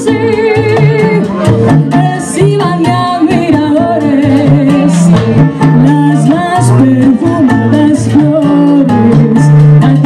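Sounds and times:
live salsa band: 0:00.0 - 0:10.0
woman singing: 0:00.0 - 0:10.0.

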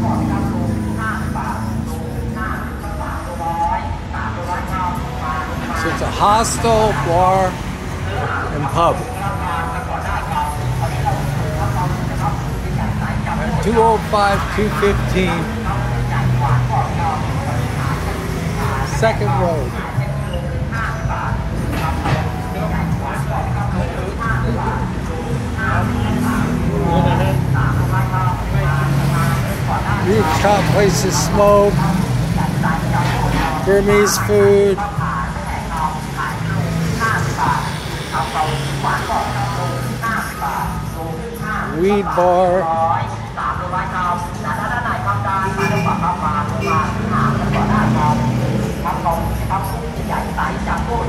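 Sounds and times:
faint voices: 0:00.0 - 0:51.0
road traffic rumble: 0:00.0 - 0:51.0.

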